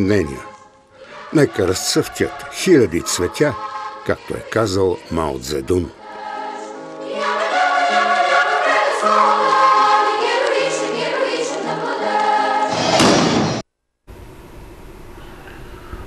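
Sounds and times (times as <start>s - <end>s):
choir singing with accompaniment: 0.0s - 13.6s.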